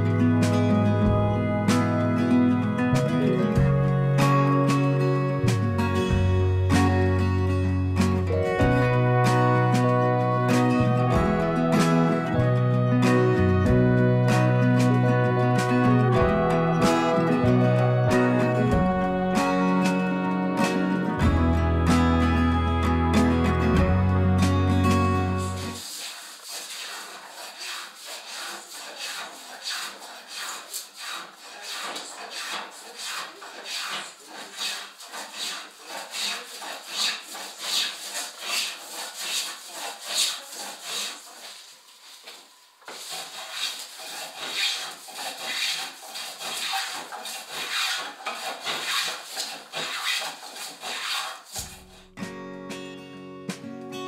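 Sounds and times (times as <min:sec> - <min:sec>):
acoustic guitar music: 0:00.0 - 0:25.8, 0:51.5 - 0:54.0
hand tool rasping wood: 0:08.0 - 0:22.4, 0:23.8 - 0:52.1.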